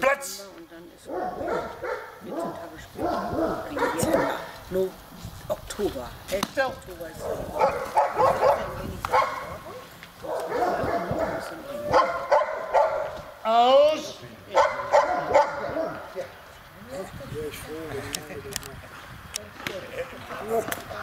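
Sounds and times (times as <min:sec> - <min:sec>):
dog barking: 0:01.0 - 0:04.6, 0:07.2 - 0:13.3, 0:14.5 - 0:16.1
dog yelping: 0:01.1 - 0:04.4, 0:07.3 - 0:13.2, 0:14.5 - 0:16.0.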